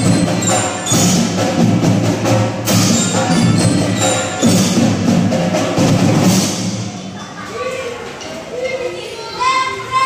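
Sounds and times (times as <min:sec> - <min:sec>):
children chattering and calling out: 0:02.6 - 0:05.1, 0:06.5 - 0:10.0.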